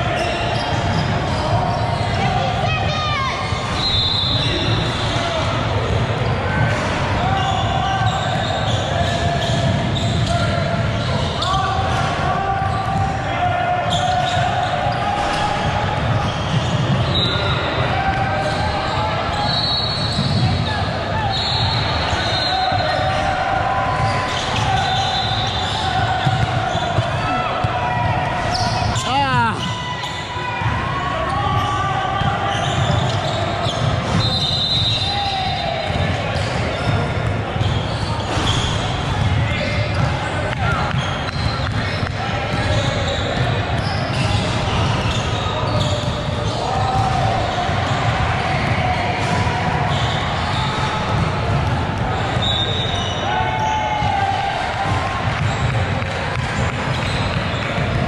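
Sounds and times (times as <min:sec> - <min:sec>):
sneakers squeaking: 0:00.0 - 0:58.0
people calling out: 0:19.4 - 0:36.0.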